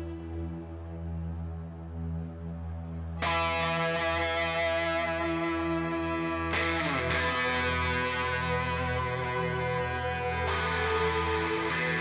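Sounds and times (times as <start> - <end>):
distorted electric guitar chord: 3.2 - 12.0.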